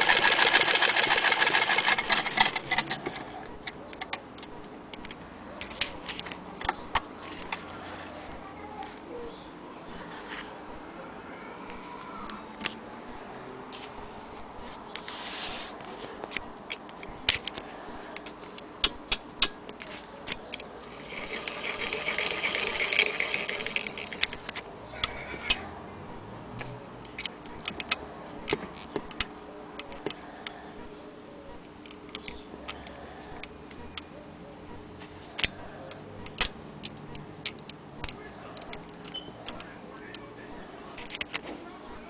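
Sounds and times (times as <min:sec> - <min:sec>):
sewing machine clicks: 0:00.0 - 0:03.2, 0:20.9 - 0:24.5.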